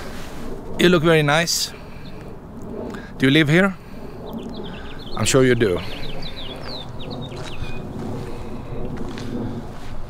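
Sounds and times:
wind rumble on microphone: 0:00.0 - 0:10.0
small bird chirping: 0:04.2 - 0:08.0.

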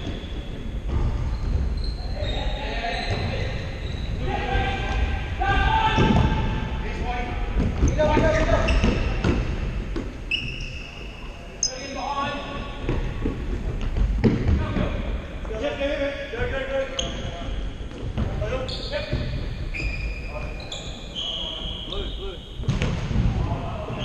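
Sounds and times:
short high squeaks: 0:10.3 - 0:12.0, 0:19.7 - 0:22.5.

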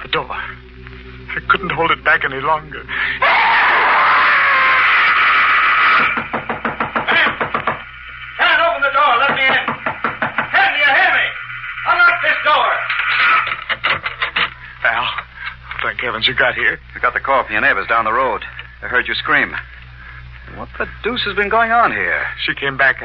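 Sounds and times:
man screaming: 0:03.2 - 0:06.2
loud knocks pounding on door: 0:06.1 - 0:07.8, 0:09.3 - 0:10.5.

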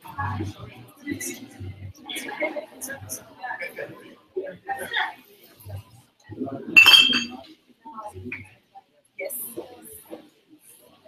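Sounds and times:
people talking: 0:00.0 - 0:08.6, 0:09.2 - 0:11.0
glass clinking: 0:06.8 - 0:07.4.

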